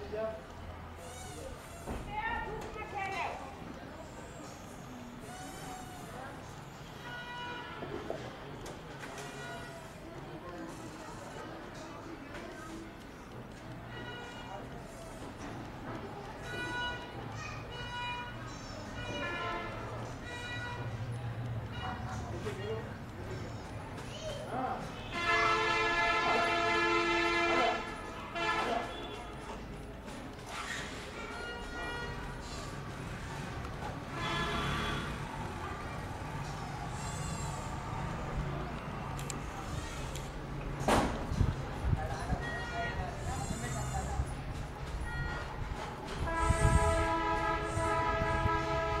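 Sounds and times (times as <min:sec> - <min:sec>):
multi-tone horn blast: 0:25.0 - 0:29.3, 0:34.0 - 0:35.3, 0:46.2 - 0:49.0.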